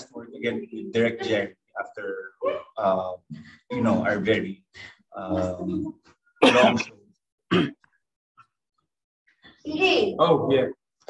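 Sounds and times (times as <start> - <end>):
person clearing throat: 6.4 - 6.9, 7.5 - 7.8.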